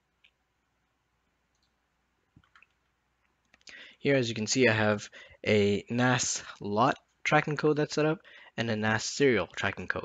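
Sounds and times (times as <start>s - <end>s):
faint computer clicks: 2.4s - 3.8s.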